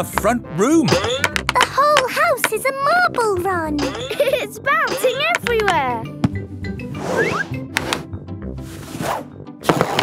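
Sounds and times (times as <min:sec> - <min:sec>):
background music: 0:00.0 - 0:10.0
marble knocking: 0:00.9 - 0:02.6.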